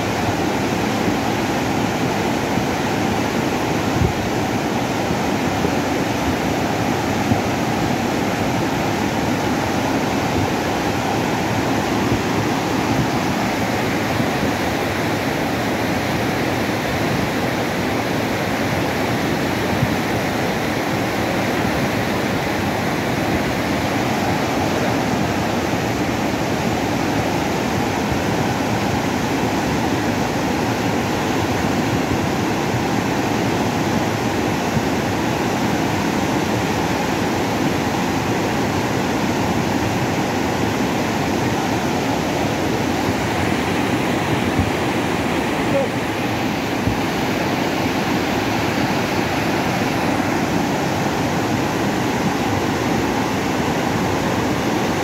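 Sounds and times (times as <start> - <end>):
river rushing in torrent: 0.0 - 55.0.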